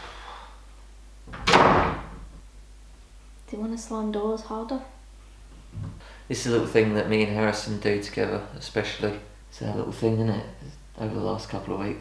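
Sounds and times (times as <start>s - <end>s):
door slamming shut: 1.3s - 2.3s.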